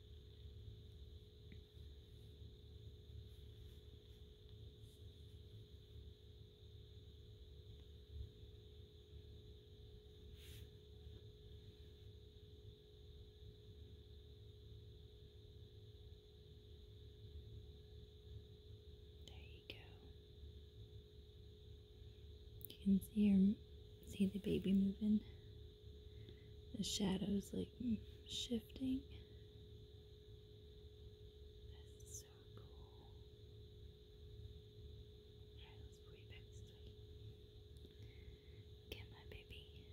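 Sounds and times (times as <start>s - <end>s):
soft hiss: 0.0s - 39.9s
steady low hum: 0.0s - 39.9s
faint whisper: 19.2s - 20.2s, 22.6s - 25.5s, 26.1s - 29.4s, 31.7s - 33.3s, 35.5s - 39.9s.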